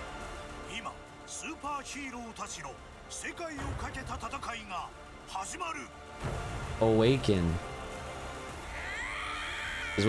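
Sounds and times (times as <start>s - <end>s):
trailer music: 0.0s - 10.0s
long high-pitched scream: 8.6s - 10.0s.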